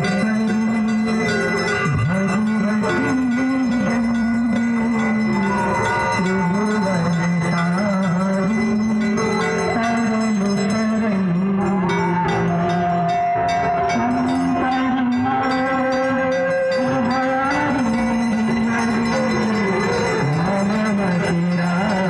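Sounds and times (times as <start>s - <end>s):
bells ringing: 0.0s - 22.0s.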